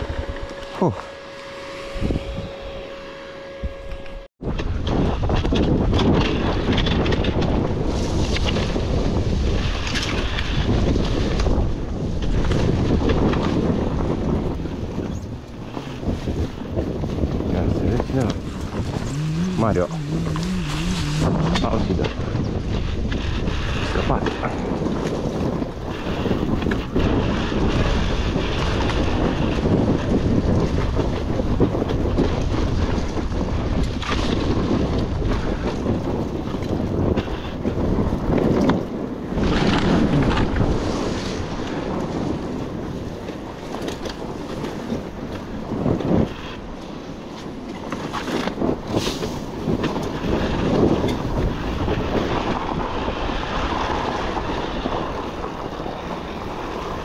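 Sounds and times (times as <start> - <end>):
wind buffeting microphone: 0.0 - 57.0
dirt bike engine running: 12.3 - 23.9.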